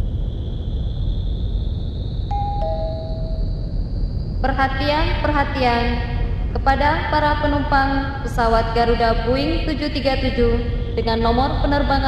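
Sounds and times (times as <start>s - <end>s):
faint high whine: 0.0s - 12.0s
low airport rumble: 0.0s - 12.0s
two-note ding-dong chime: 2.3s - 3.4s.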